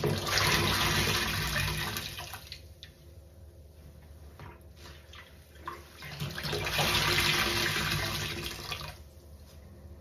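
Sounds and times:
water splashing into sink: 0:00.0 - 0:03.0, 0:04.9 - 0:09.0.

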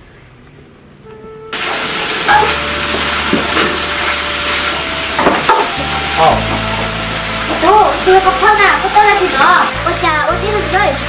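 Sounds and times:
greens sizzling in a wok: 0:01.6 - 0:11.0.

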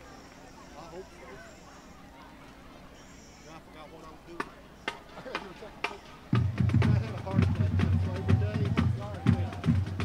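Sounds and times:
faint crowd chatter: 0:00.0 - 0:10.0.

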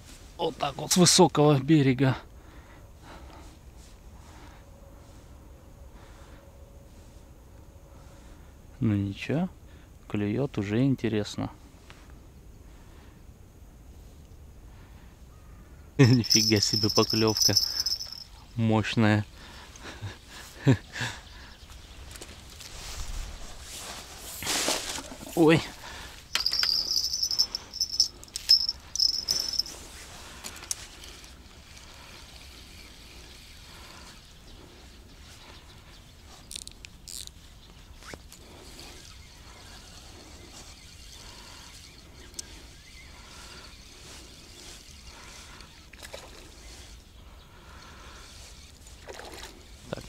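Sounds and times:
cricket chirping: 0:14.8 - 0:18.6, 0:25.4 - 0:37.4, 0:38.1 - 0:49.5.

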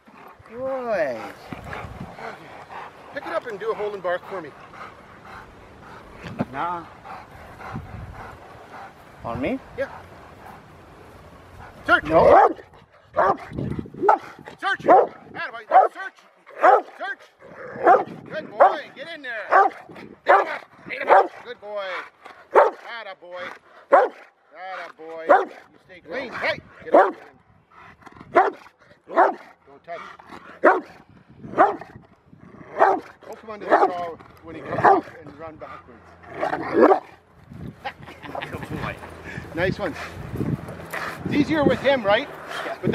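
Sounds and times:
dog panting: 0:00.0 - 0:32.0, 0:32.8 - 0:37.3, 0:38.0 - 0:42.9
dog barking: 0:12.2 - 0:12.6, 0:13.2 - 0:13.4, 0:14.9 - 0:17.0, 0:17.8 - 0:18.8, 0:19.5 - 0:21.4, 0:22.5 - 0:22.8, 0:23.9 - 0:24.3, 0:25.3 - 0:25.6, 0:26.9 - 0:27.2, 0:28.4 - 0:29.5, 0:30.6 - 0:30.9, 0:31.6 - 0:31.9, 0:32.8 - 0:33.1, 0:33.7 - 0:34.0, 0:34.8 - 0:35.1, 0:36.6 - 0:37.1.

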